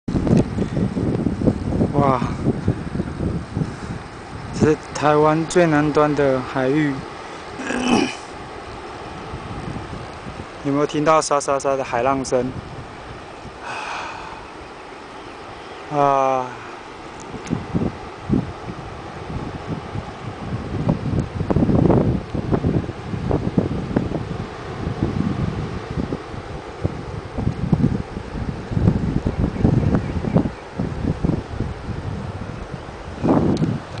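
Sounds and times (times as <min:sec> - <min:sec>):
distant surf hiss: 0:00.1 - 0:34.0
wind buffeting microphone: 0:00.1 - 0:34.0.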